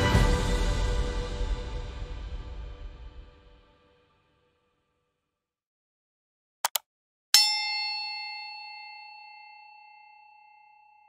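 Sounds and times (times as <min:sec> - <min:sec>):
quick clicks: 0:06.6 - 0:06.8
bright bell ding: 0:07.4 - 0:11.0.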